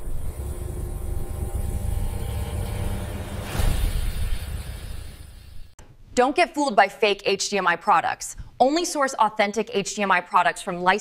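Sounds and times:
deep steady rumble: 0.0s - 5.0s
whoosh: 0.0s - 5.8s.

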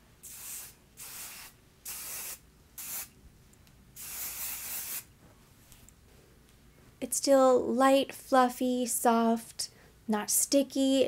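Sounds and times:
spray bottle hissing: 0.2s - 3.1s, 4.0s - 5.1s.

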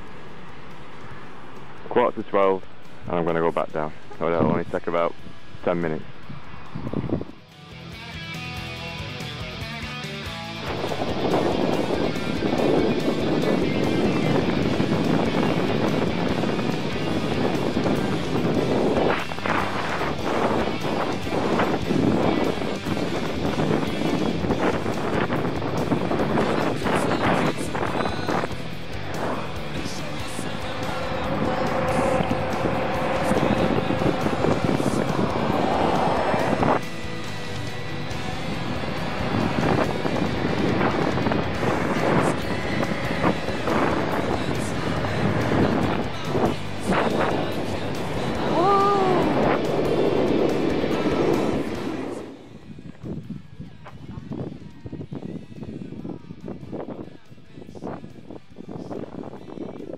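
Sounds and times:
wind buffeting microphone: 1.9s - 7.4s, 10.6s - 59.9s.

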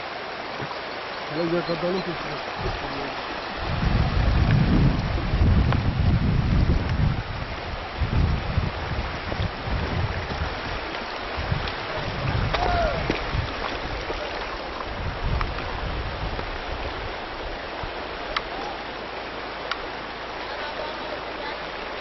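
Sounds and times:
river rushing over stones: 0.0s - 22.0s
wind buffeting microphone: 2.2s - 18.6s.

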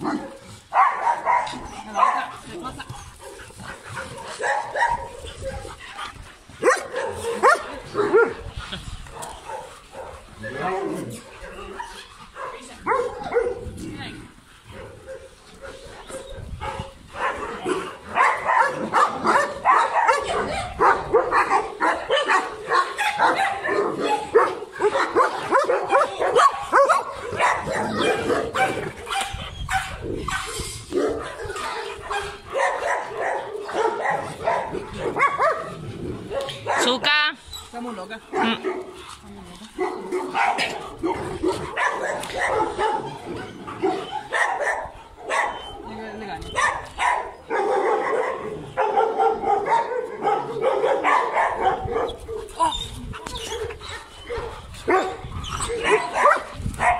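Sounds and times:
many dogs barking and yipping: 0.0s - 56.9s.

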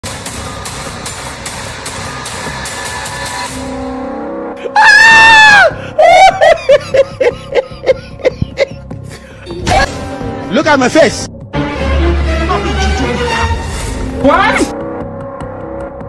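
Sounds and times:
background music with light beat: 6.0s - 16.0s.

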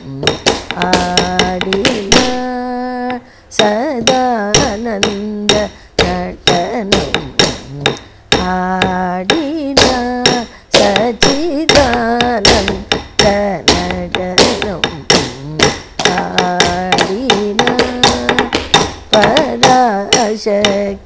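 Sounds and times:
person singing ornamented melody: 0.0s - 21.0s
stick knocking on wooden block: 0.0s - 21.0s.

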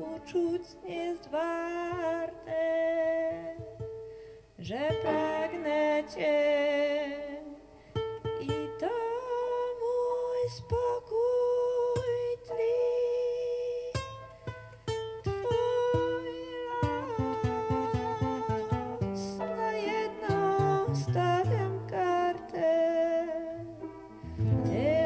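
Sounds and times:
person singing: 0.0s - 3.9s, 4.6s - 14.1s, 15.2s - 25.0s
piano playing: 5.0s - 6.8s, 15.6s - 25.0s.

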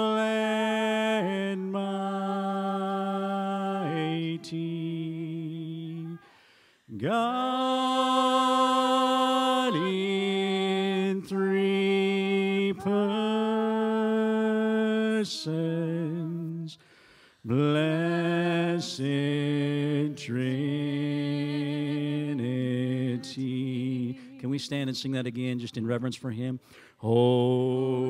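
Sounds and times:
person singing slow long notes: 0.0s - 24.5s.

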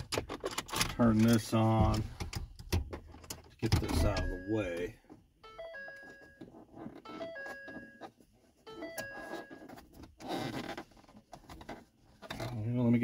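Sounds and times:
dashboard warning chime: 3.8s - 9.8s.

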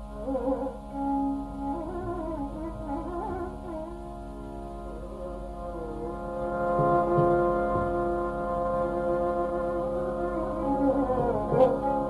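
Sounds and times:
steady drone: 0.0s - 12.0s
violin holding long note: 0.0s - 12.0s.

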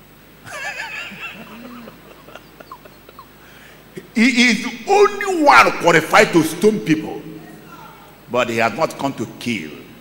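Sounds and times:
man laughing softly: 0.5s - 3.6s.

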